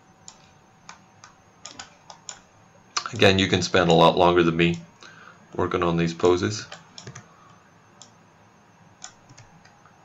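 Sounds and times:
keyboard and mouse clicks: 0:00.2 - 0:03.3, 0:06.7 - 0:07.3, 0:09.0 - 0:09.8.

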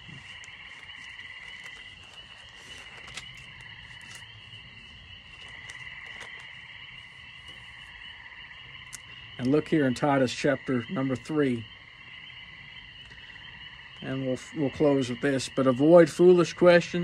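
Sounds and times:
pulsing trill of calling animals: 0:00.0 - 0:17.0.

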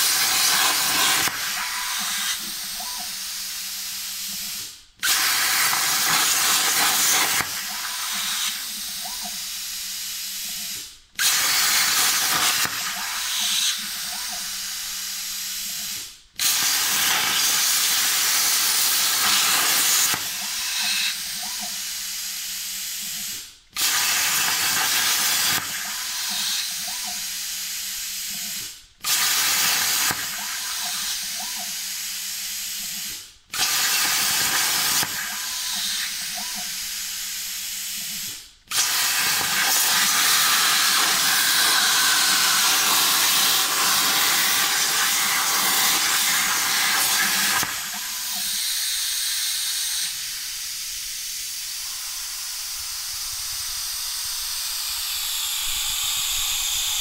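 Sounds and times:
plasma cutting torch hissing: 0:00.0 - 0:57.0.

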